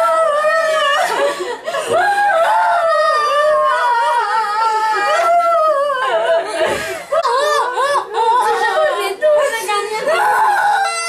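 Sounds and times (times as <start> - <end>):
women wailing: 0.0 - 11.0.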